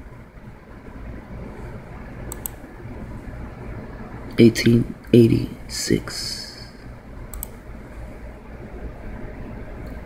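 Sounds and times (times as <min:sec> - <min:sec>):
low hum of room tone: 0:00.0 - 0:10.0
computer clicks: 0:02.2 - 0:02.7, 0:07.3 - 0:07.6.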